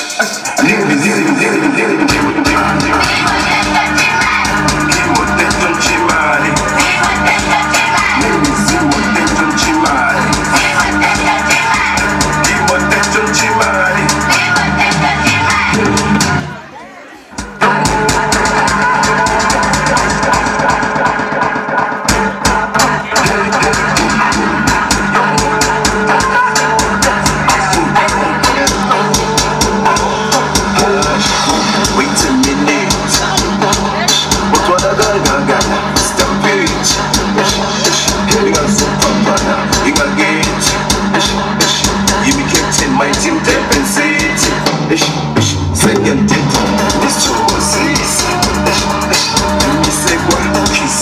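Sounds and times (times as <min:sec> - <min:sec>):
loud dance music: 0:00.0 - 0:51.0.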